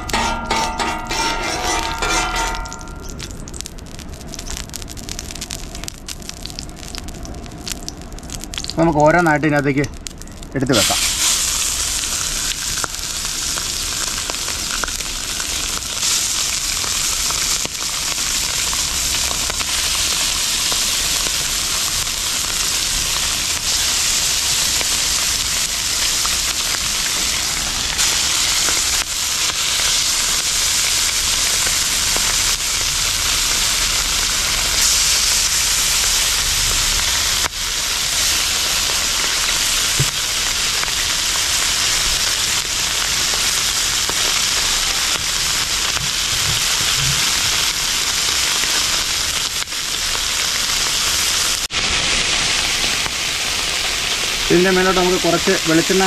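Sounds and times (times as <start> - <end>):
fish sizzling on griddle: 0.0 - 9.2, 10.0 - 56.0.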